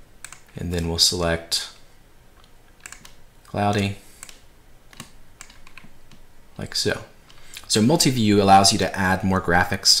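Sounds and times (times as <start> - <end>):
computer input clicks: 0.2 - 1.0, 2.4 - 6.2.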